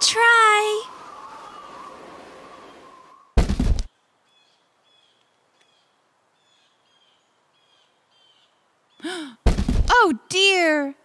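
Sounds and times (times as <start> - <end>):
puppet thumping onto wooden ledge: 9.5 - 9.9.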